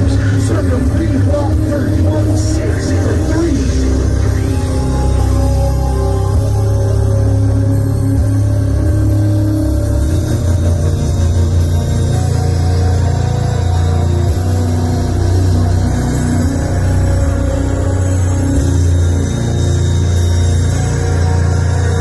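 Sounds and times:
dark hip-hop beat with heavy bass: 0.0s - 22.0s.

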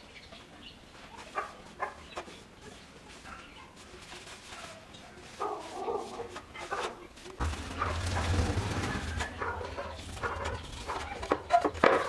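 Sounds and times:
dog barking: 5.4s - 6.3s, 9.3s - 11.4s.

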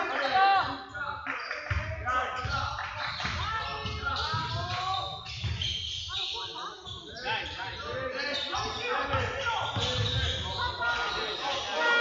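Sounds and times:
people shouting: 10.8s - 12.0s.

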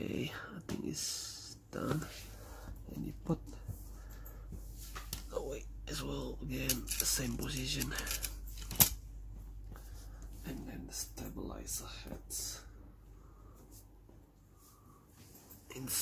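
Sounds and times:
indistinct man's voice: 0.0s - 2.2s, 5.3s - 8.3s, 10.4s - 12.7s, 15.7s - 16.0s.

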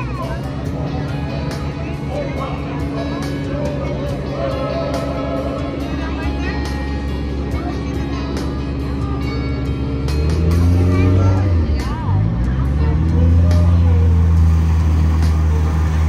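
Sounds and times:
indistinct voices: 0.0s - 16.0s.

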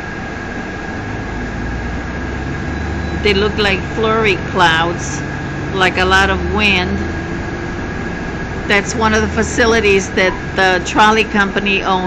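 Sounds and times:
engine rumble inside cabin: 0.0s - 12.0s
thin high whine: 0.0s - 12.0s.

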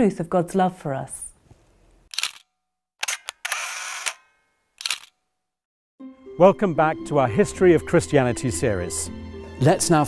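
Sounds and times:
camera shutter clicks: 2.1s - 5.2s.

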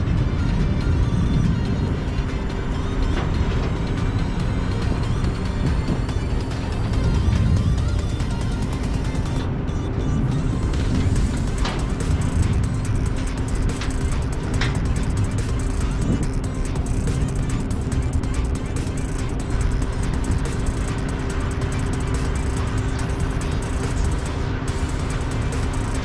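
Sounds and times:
truck cab rumble and hum: 0.0s - 26.0s.

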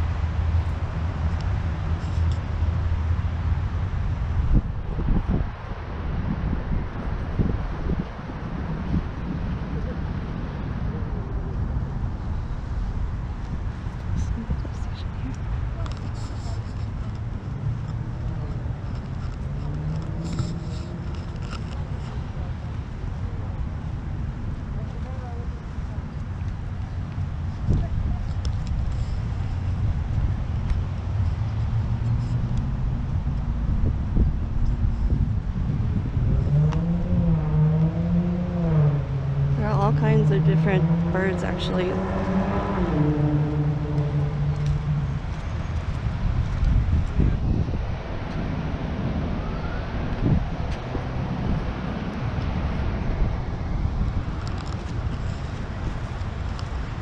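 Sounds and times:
steady low rumble: 0.0s - 57.0s
people talking quietly: 13.8s - 29.7s.

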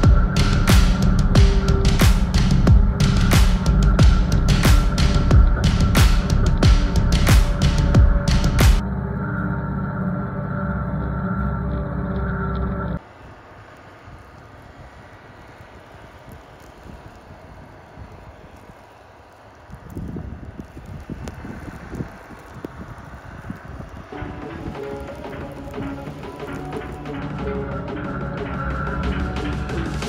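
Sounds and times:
steady outdoor hiss: 0.0s - 9.2s, 13.0s - 30.0s
music: 0.0s - 13.0s, 24.1s - 30.0s
snowcat low rumbling: 0.0s - 30.0s.

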